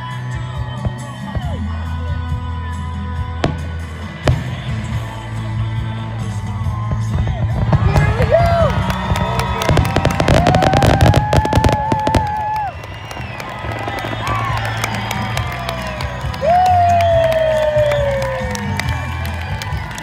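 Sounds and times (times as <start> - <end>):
fireworks bangs and crackles: 3.1 - 20.0
crowd cheering and whooping: 7.6 - 20.0.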